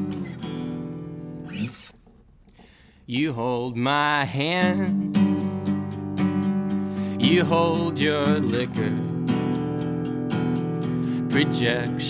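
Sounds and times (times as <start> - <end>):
acoustic guitar chord: 3.9 - 12.0.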